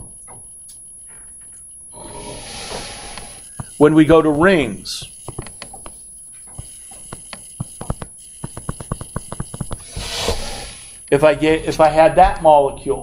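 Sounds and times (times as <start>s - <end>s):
short hiss: 9.8s - 10.9s.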